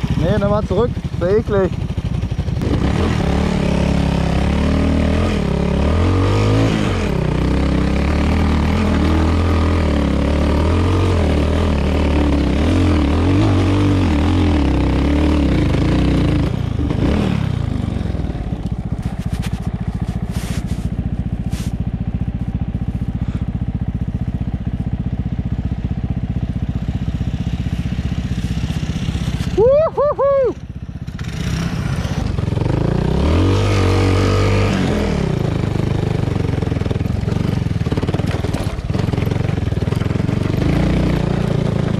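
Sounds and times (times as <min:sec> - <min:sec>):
motorcycle engine revving and idling: 0:00.0 - 0:41.9.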